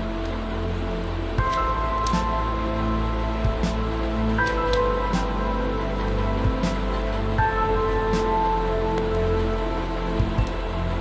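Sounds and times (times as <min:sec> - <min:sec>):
background music of held notes: 0:00.0 - 0:11.0.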